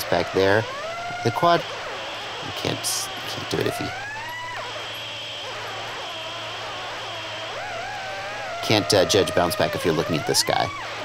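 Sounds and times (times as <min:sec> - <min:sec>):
quadcopter motors whining: 0:00.0 - 0:11.0.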